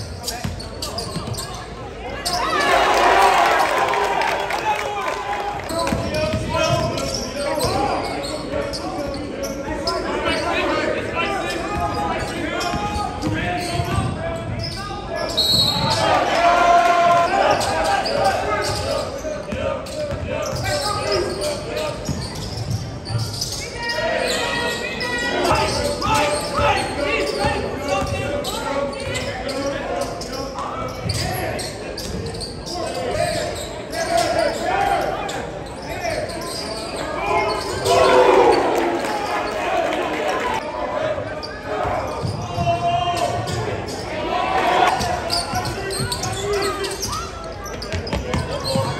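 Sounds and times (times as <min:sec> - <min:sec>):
voices of players and spectators: 0:00.0 - 0:48.9.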